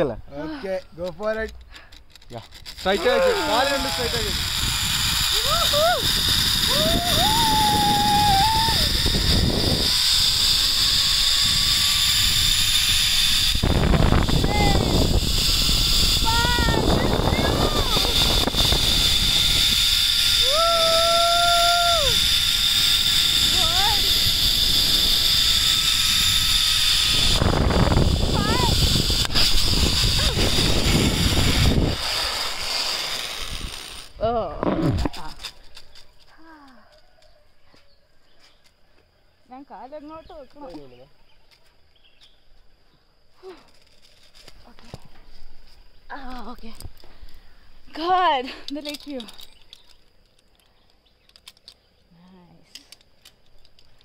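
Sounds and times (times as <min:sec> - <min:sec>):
zip line pulley whine: 0:02.1 - 0:34.4
person whooping: 0:03.0 - 0:04.3, 0:05.3 - 0:09.1, 0:20.4 - 0:22.3
wind rushing on microphone: 0:03.0 - 0:32.6.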